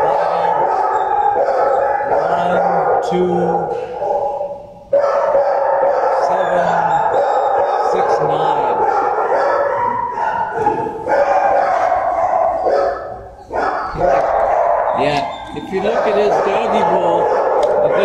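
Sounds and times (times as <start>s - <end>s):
dogs barking: 0.0s - 18.0s.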